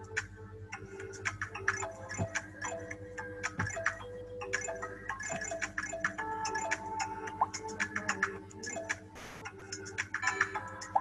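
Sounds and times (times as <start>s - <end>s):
playful game music loop: 0.0s - 11.0s.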